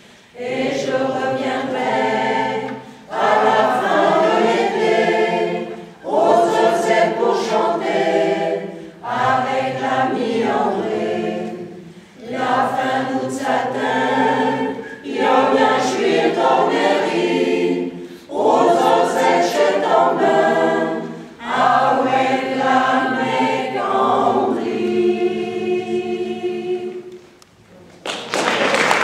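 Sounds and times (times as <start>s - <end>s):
choir singing unaccompanied: 0.3s - 27.4s
audience applause: 28.0s - 29.0s.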